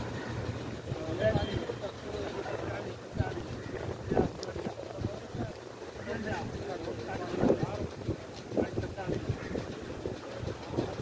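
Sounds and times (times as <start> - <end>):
men talking indistinctly: 0.0 - 11.0
wind buffeting microphone: 0.0 - 11.0.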